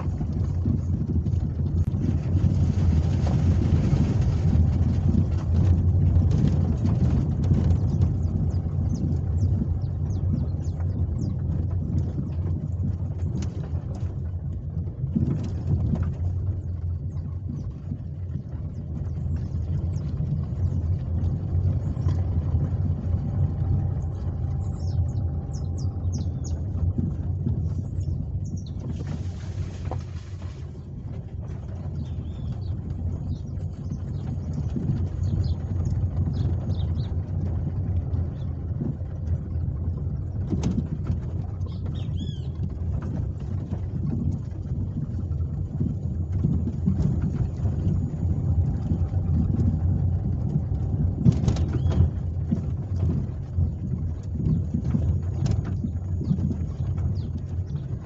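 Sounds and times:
car engine rumble: 0.0 - 58.0
tyres on dirt road: 0.0 - 58.0
birds chirping: 7.5 - 12.4, 17.0 - 37.3, 41.5 - 43.1, 51.5 - 52.2, 53.1 - 58.0.

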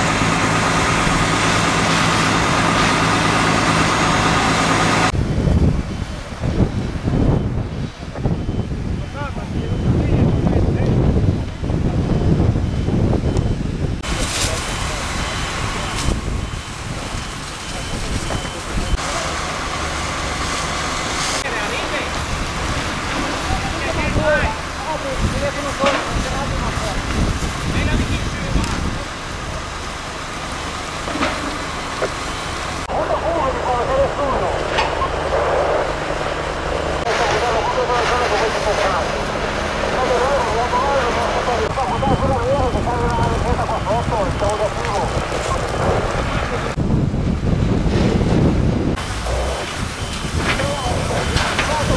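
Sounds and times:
fire crackling: 0.0 - 51.9
fire engine pumps running: 0.0 - 51.9
voices calling: 31.7 - 46.8, 49.0 - 51.9
hose water hissing: 49.0 - 51.9.

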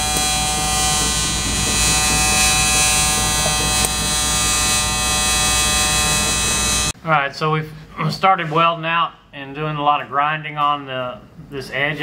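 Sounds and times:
welding arc buzzing: 0.0 - 7.0.

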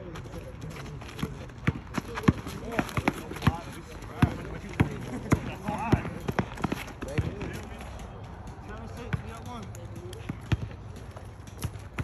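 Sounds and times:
basketball bouncing on asphalt: 0.1 - 7.8, 8.8 - 12.0.

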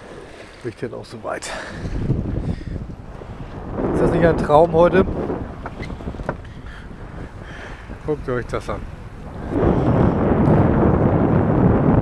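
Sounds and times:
water washing along hull: 0.0 - 12.0
wind blowing across microphone: 0.0 - 12.0.

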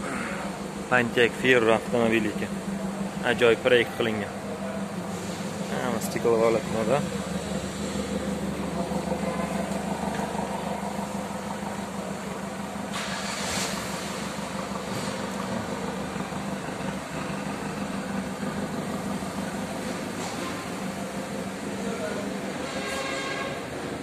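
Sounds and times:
car engine idling: 0.0 - 24.0
brief rushing hiss: 12.9 - 14.0.

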